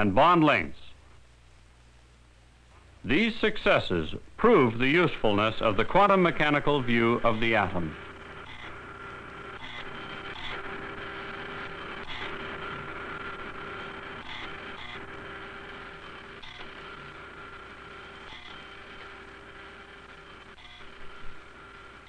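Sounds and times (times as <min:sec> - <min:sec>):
machine two-tone electric hum: 0:00.0 - 0:22.0.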